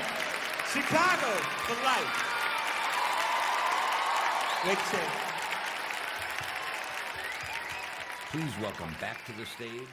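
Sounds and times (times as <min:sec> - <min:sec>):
audience applauding: 0:00.0 - 0:09.9.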